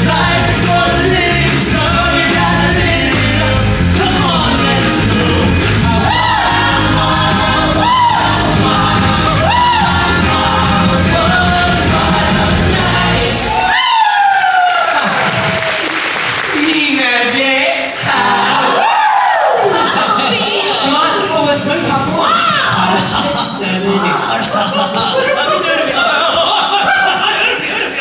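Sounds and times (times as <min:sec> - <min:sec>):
rock and roll song with band: 0:00.0 - 0:13.7
audience cheering: 0:04.0 - 0:16.8, 0:18.0 - 0:21.2.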